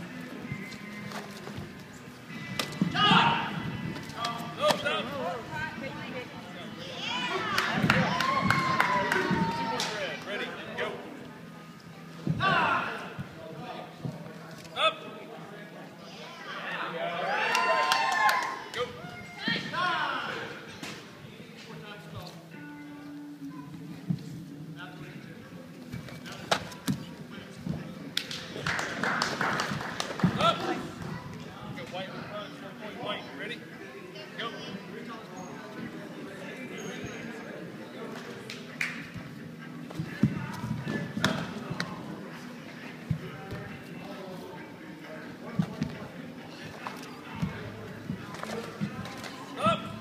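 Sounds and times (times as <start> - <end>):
crowd chatter: 0.0 - 50.0
voices of people: 0.0 - 50.0.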